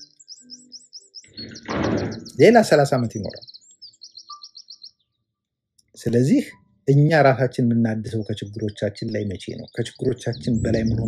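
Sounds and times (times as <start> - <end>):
small bird chirping: 0.0 - 7.2, 7.8 - 11.0.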